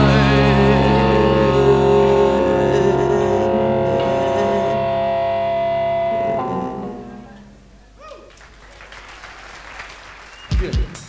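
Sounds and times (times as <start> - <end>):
live band holding chord: 0.0 - 8.0.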